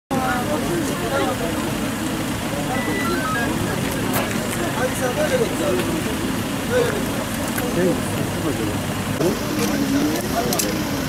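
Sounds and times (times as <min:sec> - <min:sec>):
people talking over one another: 0:00.1 - 0:11.0
vehicle engines running: 0:00.1 - 0:11.0
short high beeps: 0:02.7 - 0:03.8.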